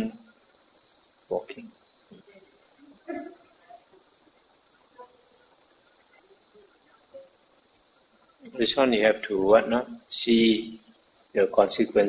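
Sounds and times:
faint room noise: 0.0 - 12.0
steady high-pitched tone: 0.0 - 12.0.

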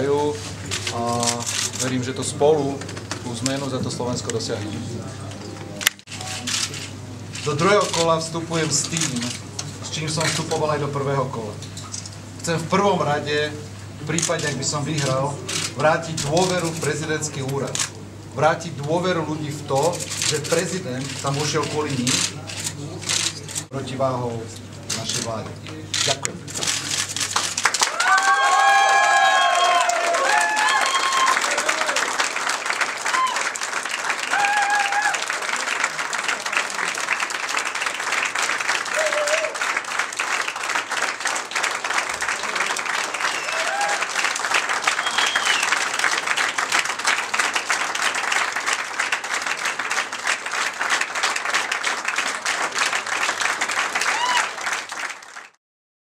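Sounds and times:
crowd applauding: 26.6 - 55.6.

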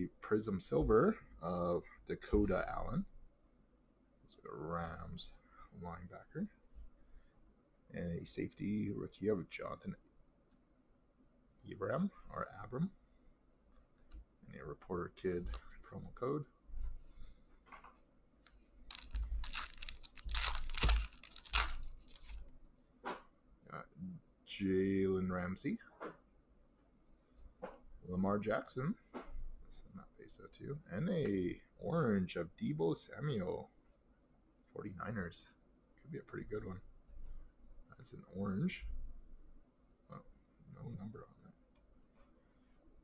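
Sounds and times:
foil wrapper tearing and crinkling: 18.9 - 22.4.

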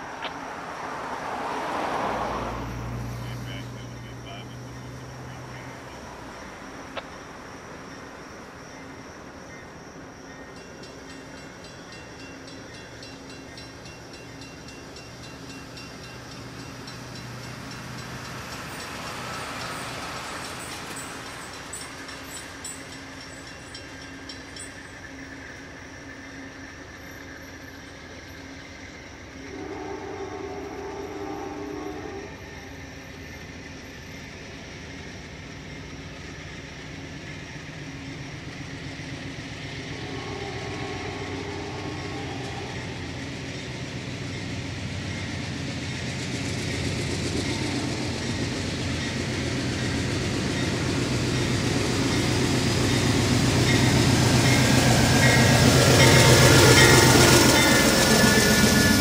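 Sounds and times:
locomotive engine rumble: 2.6 - 59.0
locomotive air horn blasts: 29.5 - 32.4, 39.9 - 42.8.

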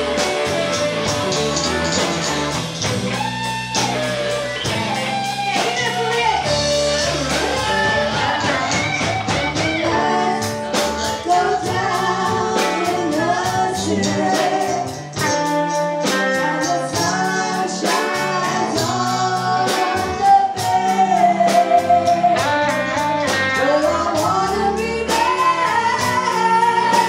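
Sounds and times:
drum kit beat: 0.0 - 27.0
electric guitars: 0.0 - 27.0
women singing: 5.6 - 27.0.

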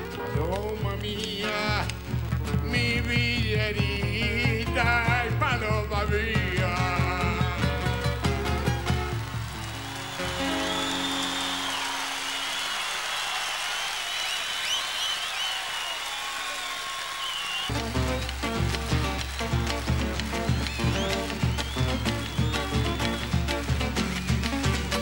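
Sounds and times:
folk band playing: 0.0 - 11.5, 17.7 - 25.0
crowd applauding and whistling: 0.0 - 25.0
bass drum beat: 0.4 - 9.6, 17.7 - 25.0
person singing: 2.6 - 8.2.

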